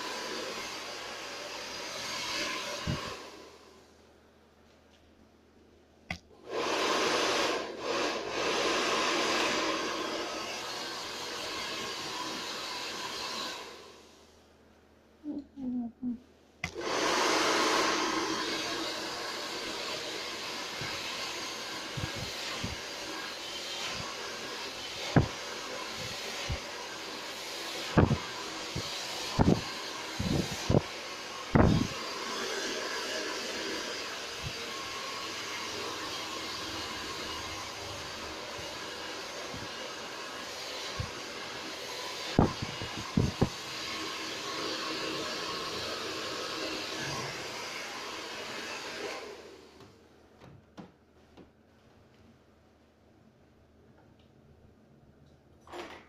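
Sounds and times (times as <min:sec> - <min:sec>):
hair dryer running: 0:00.0 - 0:03.8, 0:06.3 - 0:14.3, 0:16.6 - 0:50.0.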